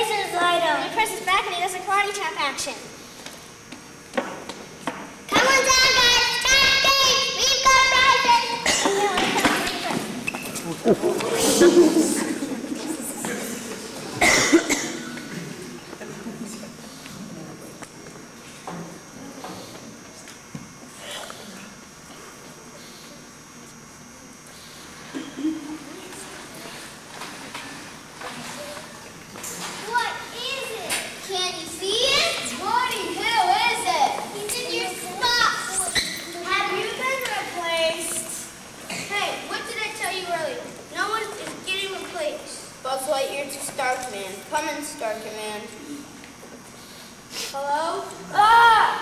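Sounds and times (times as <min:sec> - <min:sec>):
young children chattering: 0:05.3 - 0:17.5, 0:28.2 - 0:46.2
person coughing: 0:08.6 - 0:09.1, 0:14.2 - 0:15.6.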